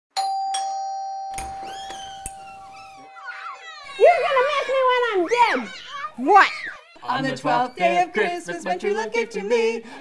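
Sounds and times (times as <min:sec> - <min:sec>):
two-note doorbell chime: 0:00.2 - 0:01.6.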